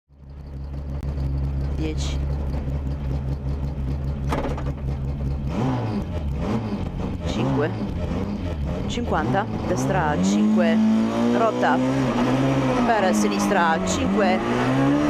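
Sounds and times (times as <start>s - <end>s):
rally car engine revving: 0.2s - 15.0s.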